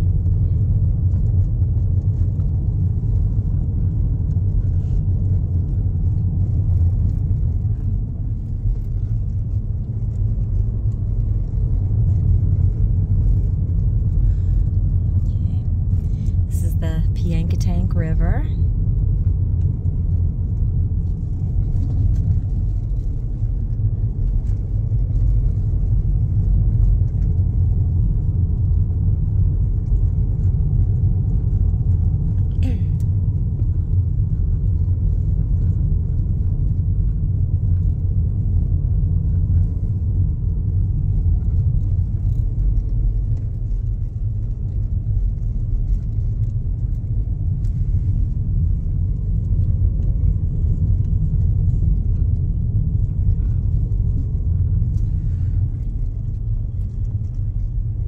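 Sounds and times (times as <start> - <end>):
car driving interior rumble: 0.0 - 58.0.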